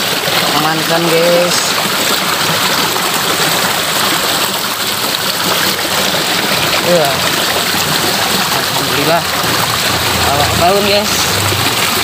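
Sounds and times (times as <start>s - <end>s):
water flowing in a ditch: 0.0s - 12.0s.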